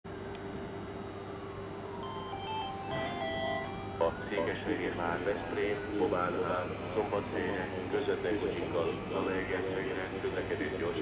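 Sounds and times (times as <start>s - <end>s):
electrical hum: 0.1s - 11.0s
faint whine changing pitch: 0.6s - 11.0s
public address chime: 1.9s - 11.0s.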